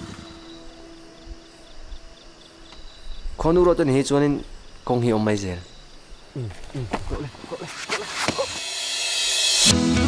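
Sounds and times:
faint crickets chirping: 0.0s - 9.6s.

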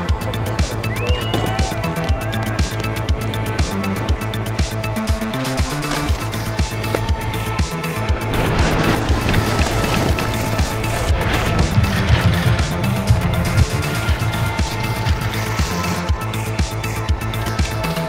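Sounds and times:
background music with beat: 0.0s - 18.0s
rushing noise: 6.8s - 17.2s.

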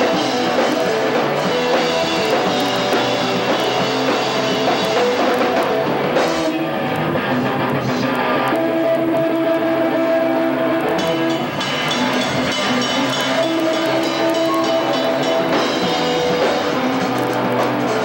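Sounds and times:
distorted electric guitars: 0.0s - 18.0s
drums: 0.0s - 18.0s.

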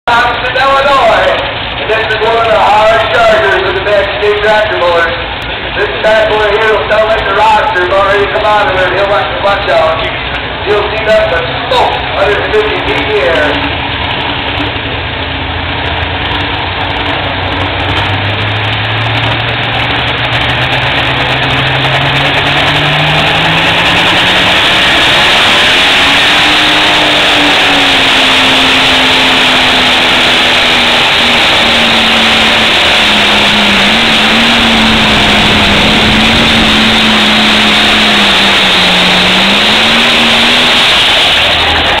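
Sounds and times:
tractor diesel engine revving: 0.1s - 42.0s.

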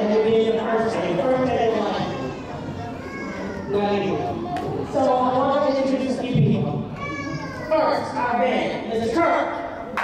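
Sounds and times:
person speaking in a large hall: 0.0s - 10.0s.

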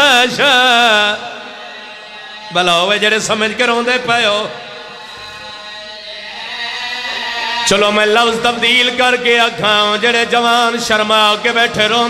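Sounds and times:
voice chanting through loudspeaker: 0.0s - 12.0s.

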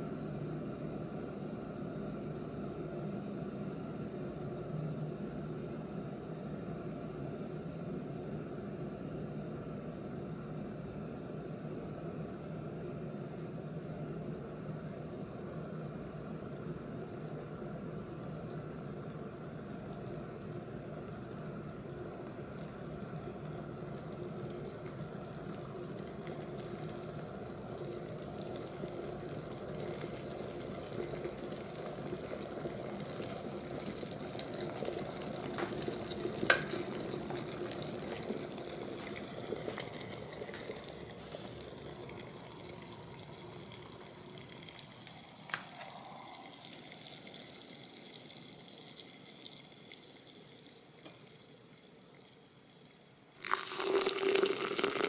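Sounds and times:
crackling fizz of boiling bubbles: 0.0s - 55.0s
kettle rumbling: 8.1s - 55.0s.

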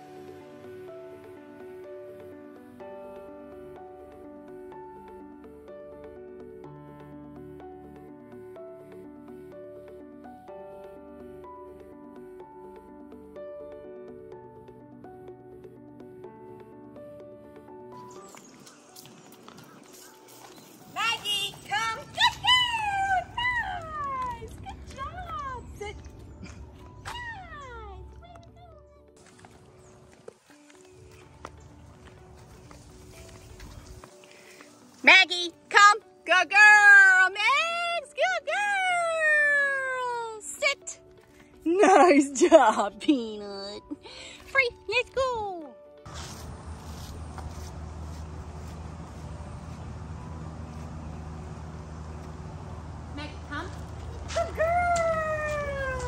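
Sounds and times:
low outdoor rumble: 46.2s - 56.0s.

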